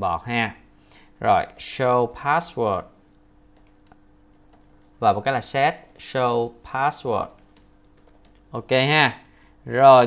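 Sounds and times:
keyboard typing clicks: 3.5s - 5.0s, 5.7s - 6.2s, 7.2s - 8.5s.

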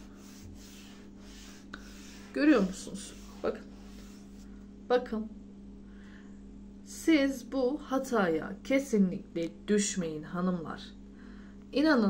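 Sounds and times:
soft rubbing swishes: 0.0s - 4.6s
steady low hum: 0.0s - 12.0s.

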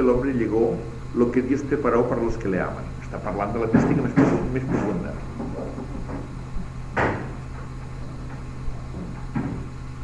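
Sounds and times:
low recording hum: 0.0s - 10.0s
short knock: 7.0s - 7.4s.

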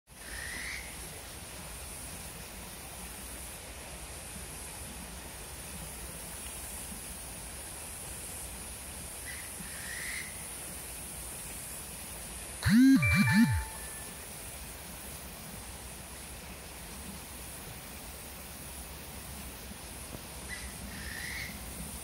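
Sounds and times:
short calls: 12.6s - 14.1s
high-pitched insect chorus: 19.8s - 22.0s.

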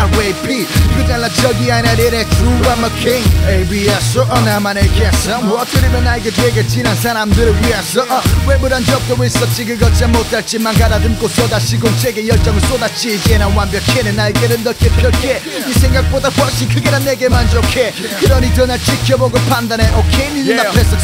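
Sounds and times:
deep bass notes: 0.0s - 21.0s
rapping over a beat: 0.0s - 21.0s.

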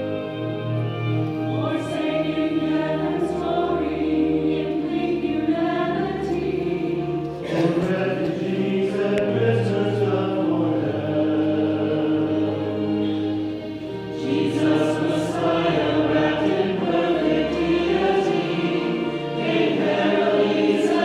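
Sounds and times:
choir singing: 0.0s - 21.0s.

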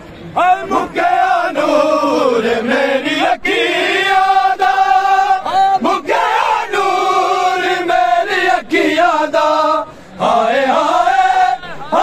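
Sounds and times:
men chanting a lament: 0.4s - 12.0s.

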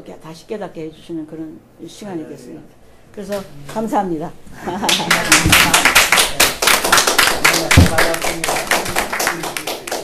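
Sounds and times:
audience applauding: 4.8s - 10.0s.

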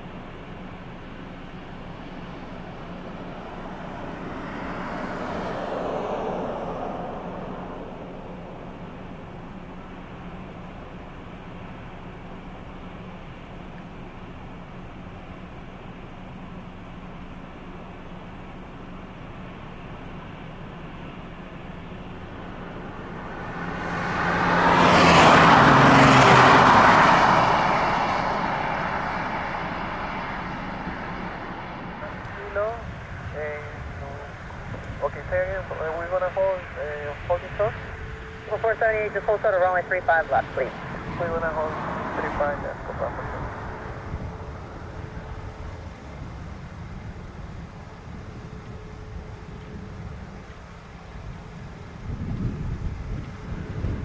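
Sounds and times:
jet airliner taking off: 1.4s - 13.0s, 19.8s - 50.4s
air traffic control radio speech: 32.0s - 44.0s.

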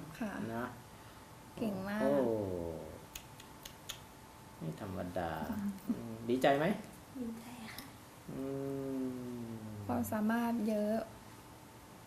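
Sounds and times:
person humming low note: 8.3s - 10.0s.

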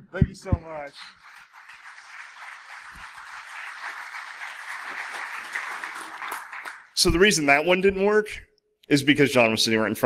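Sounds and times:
audience applauding: 0.3s - 7.1s.

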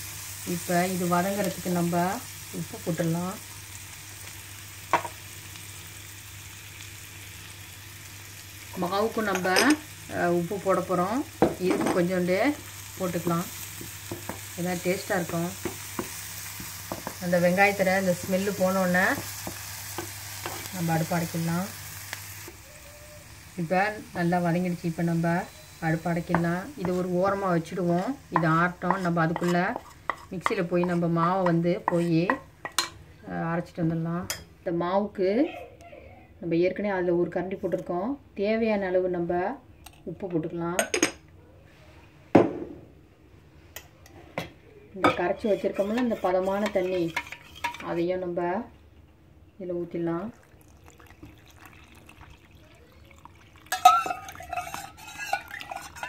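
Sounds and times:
onion frying in oil: 0.0s - 33.8s, 45.1s - 48.0s, 50.0s - 56.0s
wooden spatula stirring in pan: 26.2s - 32.8s, 45.4s - 48.0s, 53.7s - 56.0s
water pouring into flour: 50.3s - 55.9s
steel utensils clinking on glass bowl: 53.2s - 56.0s.

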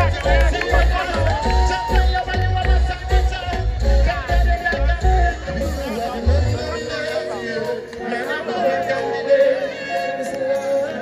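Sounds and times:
voices talking: 5.4s - 11.0s.

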